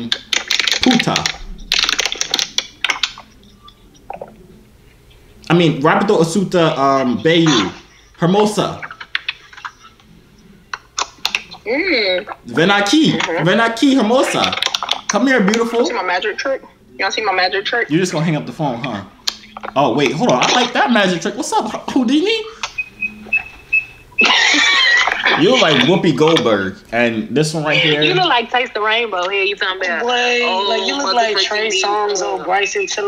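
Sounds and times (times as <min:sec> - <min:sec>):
plastic bottle crackling: 0:00.0 - 0:03.3.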